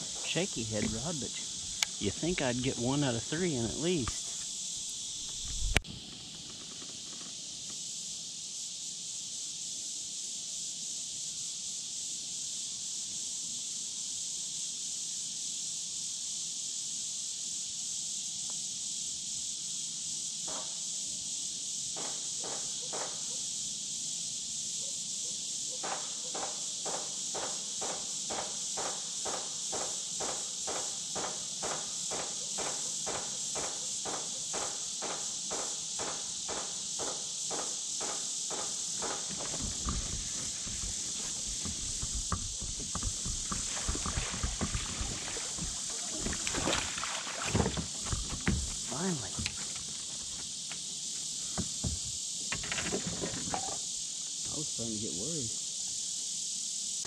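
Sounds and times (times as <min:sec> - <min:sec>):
high insect chorus: 0:00.0 - 0:57.0
fish splashing in water: 0:39.4 - 0:48.8.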